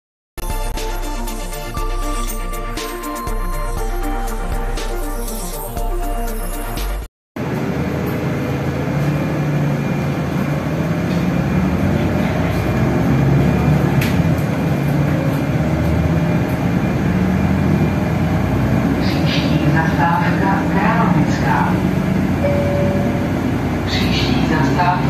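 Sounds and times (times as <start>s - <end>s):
bus engine running: 0.4s - 25.0s
road noise: 0.5s - 25.0s.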